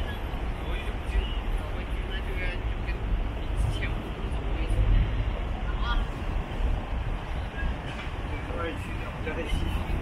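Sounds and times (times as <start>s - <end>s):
passers-by talking: 0.0s - 10.0s
road traffic rumble: 0.0s - 10.0s.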